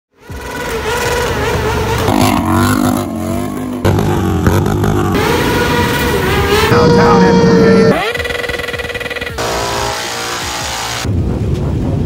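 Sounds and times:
motorcycle engines revving: 0:00.2 - 0:11.1.

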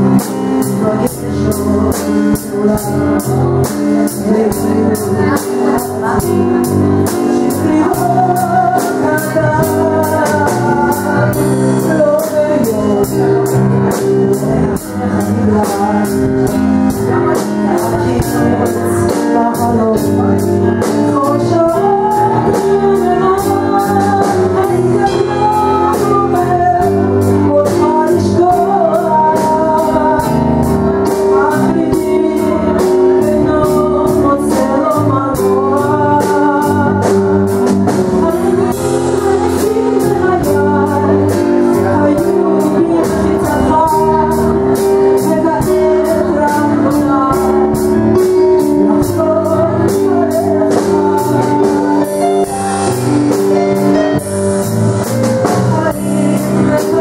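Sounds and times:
drum kit: 0:00.0 - 0:57.0
electric bass: 0:00.0 - 0:57.0
held chords: 0:00.0 - 0:57.0.

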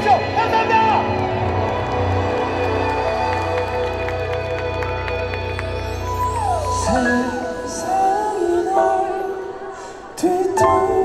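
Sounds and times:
live pop music over loudspeakers: 0:00.0 - 0:11.0.

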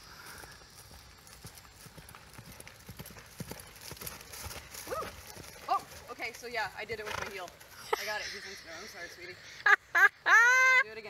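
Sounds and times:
horse hoofbeats on grass and dirt: 0:00.0 - 0:09.0.

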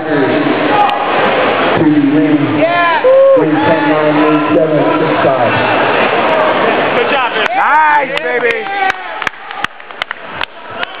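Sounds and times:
murmur of crowd voices: 0:00.0 - 0:11.0
sharp hand claps: 0:07.4 - 0:11.0.

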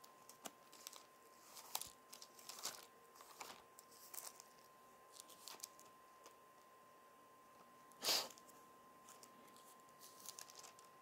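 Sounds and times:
crinkling handling noise: 0:00.0 - 0:06.7, 0:07.5 - 0:11.0.

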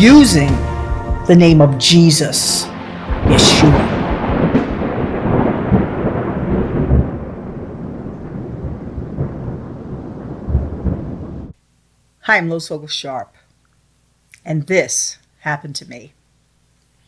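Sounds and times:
thunder rolling rumble: 0:02.8 - 0:11.6.

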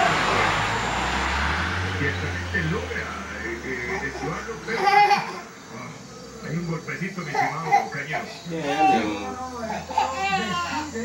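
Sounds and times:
vehicle passing rumble: 0:00.0 - 0:08.2.

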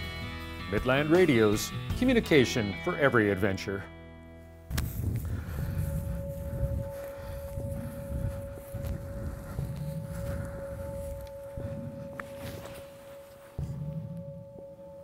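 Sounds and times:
held background music tone: 0:00.0 - 0:15.0
footsteps in dry grass: 0:04.7 - 0:14.3.

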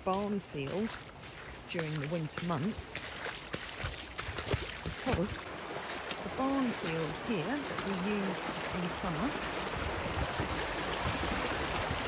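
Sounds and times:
floodwater rushing and lapping: 0:00.0 - 0:12.0.

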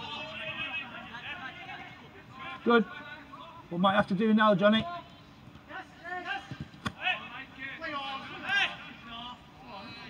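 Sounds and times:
voices shouting and calling: 0:00.0 - 0:03.8, 0:04.6 - 0:10.0.

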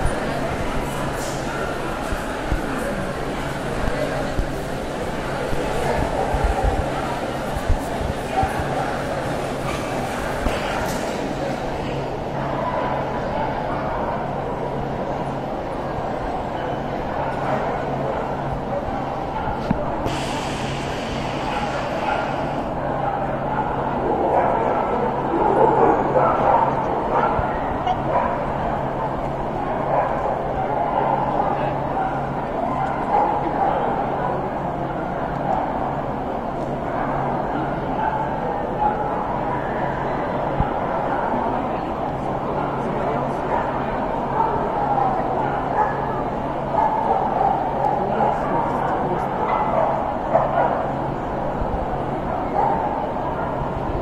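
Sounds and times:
crowd chatter indoors: 0:00.0 - 0:54.0.

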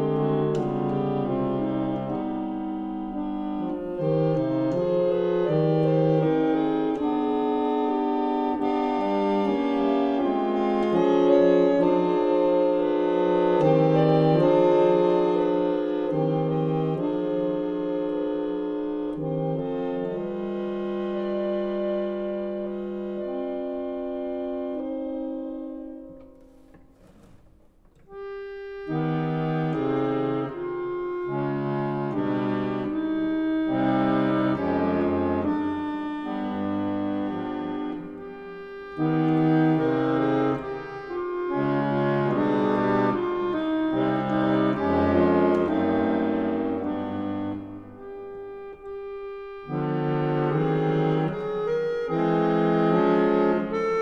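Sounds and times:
reed organ playing chords: 0:00.0 - 0:26.5, 0:27.8 - 0:54.0.

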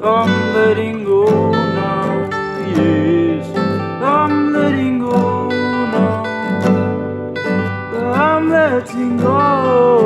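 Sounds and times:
person singing wordlessly: 0:00.0 - 0:06.9, 0:07.7 - 0:10.0
acoustic guitars strummed and picked: 0:00.0 - 0:10.0.

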